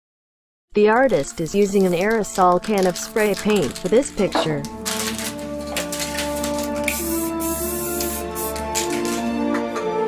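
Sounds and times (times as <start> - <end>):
background music with held notes: 0.8 - 10.0
spray-paint can hissing: 1.4 - 9.3.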